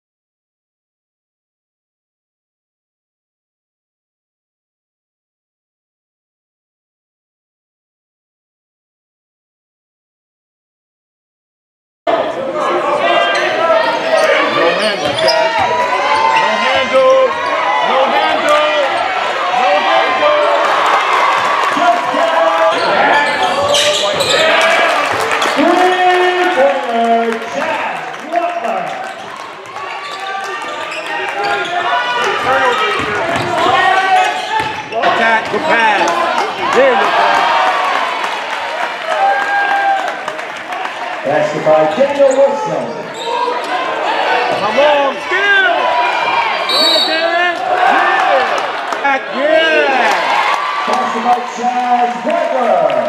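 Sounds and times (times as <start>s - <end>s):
voices echoing in a hall: 12.1s - 53.0s.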